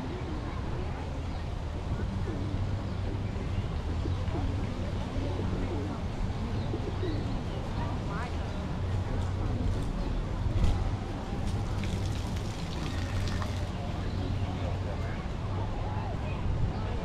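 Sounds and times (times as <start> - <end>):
people's voices: 0.0 - 17.0
pigeons cooing: 11.8 - 13.6.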